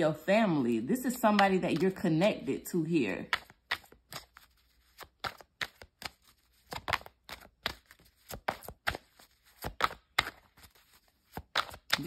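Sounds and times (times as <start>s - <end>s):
cards being shuffled: 0.5s - 12.0s.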